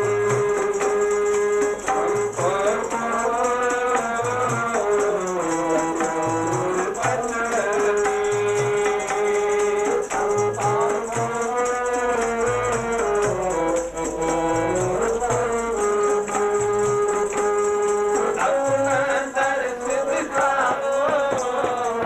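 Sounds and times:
harmonium melody: 0.0s - 22.0s
jingling hand percussion: 0.0s - 22.0s
tabla strokes: 0.0s - 22.0s.

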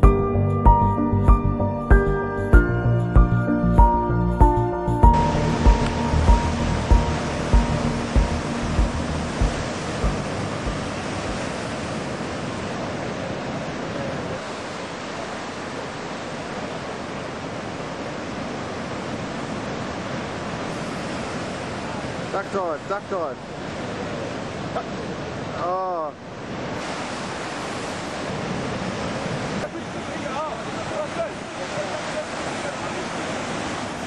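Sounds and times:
background music with low beats: 0.0s - 11.4s
ocean surf breaking: 5.0s - 34.0s.

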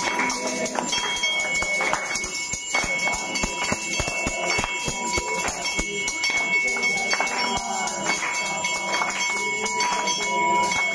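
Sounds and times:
brass bell ringing: 0.0s - 10.9s
hand claps: 0.0s - 10.9s.

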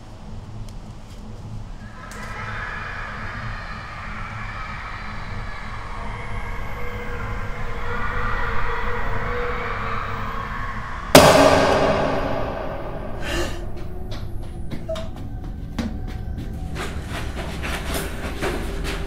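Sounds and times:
dark noisy drone: 0.0s - 19.0s
loud sudden hit ringing out: 11.1s - 14.0s.

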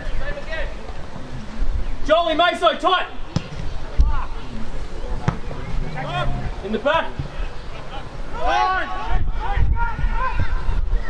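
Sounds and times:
ball kick thud: 3.3s - 4.2s, 5.2s - 5.9s
heavy low thump: 3.3s - 4.2s, 5.1s - 7.5s.

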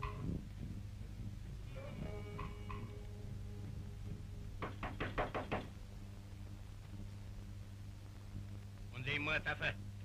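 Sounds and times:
steady low hum: 0.0s - 10.0s
rapid knocking on a door: 4.6s - 5.8s.

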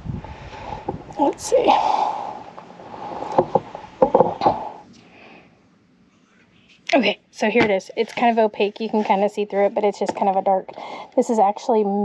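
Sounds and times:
knocks on wooden boards: 3.4s - 4.6s.

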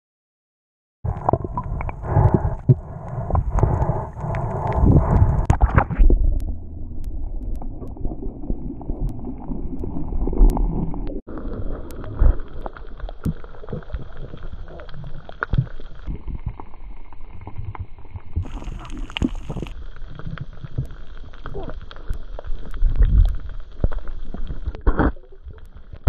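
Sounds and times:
underwater rumble of moving water: 1.1s - 26.0s.

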